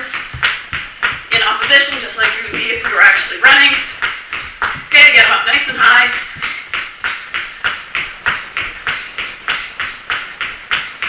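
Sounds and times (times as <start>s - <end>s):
quick footfalls running in place: 0.0s - 11.0s.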